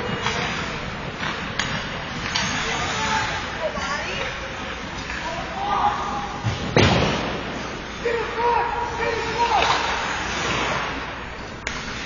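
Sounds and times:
skates and sticks scraping ice: 0:00.0 - 0:06.4, 0:07.5 - 0:12.0.

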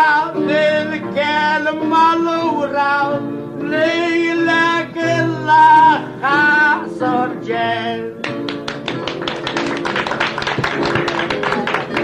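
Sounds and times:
acoustic guitar plucked notes: 0:00.0 - 0:09.6.

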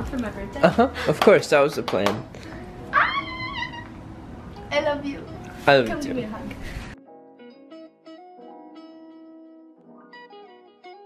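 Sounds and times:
woman squealing: 0:02.9 - 0:04.0.

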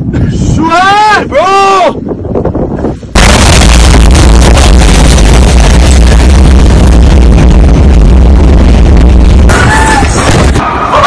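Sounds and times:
huge explosion boom: 0:03.2 - 0:10.6.

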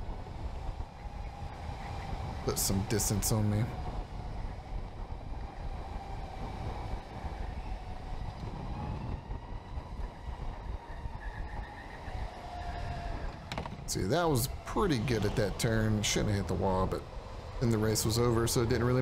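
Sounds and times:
electric go-kart motor whining: 0:00.0 - 0:17.6
low rumble of kart: 0:00.0 - 0:19.0.

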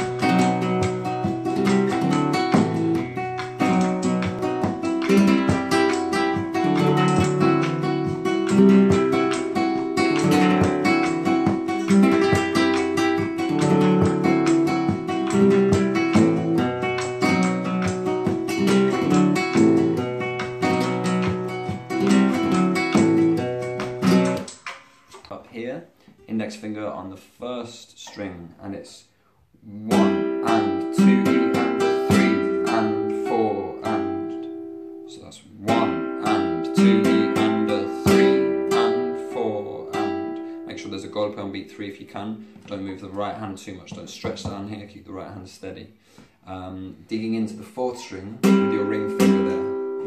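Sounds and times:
flamenco guitar strumming: 0:00.0 - 0:25.4, 0:29.8 - 0:44.9, 0:47.6 - 0:50.0.

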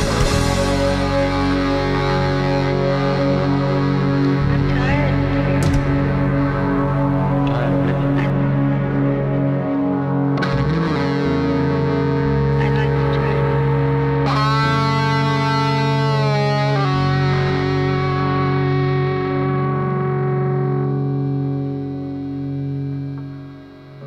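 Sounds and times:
distorted electric guitar chords: 0:00.0 - 0:24.0.

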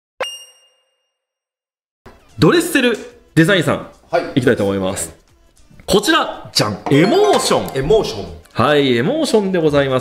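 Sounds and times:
bright metallic ding: 0:06.9 - 0:07.8.

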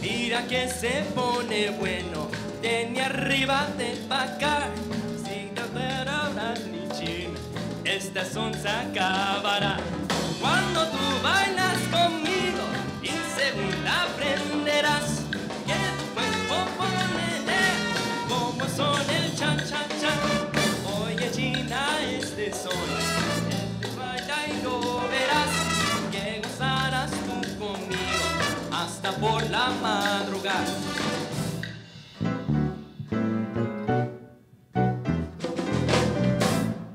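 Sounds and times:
latin percussion: 0:00.0 - 0:33.1, 0:35.2 - 0:36.9
guitar: 0:00.0 - 0:34.2, 0:34.8 - 0:36.9
bass line: 0:00.0 - 0:36.9
piano: 0:00.0 - 0:36.9
trumpets and trombones: 0:10.3 - 0:21.3, 0:22.7 - 0:26.4, 0:27.8 - 0:29.4, 0:30.2 - 0:32.5, 0:35.4 - 0:36.9.

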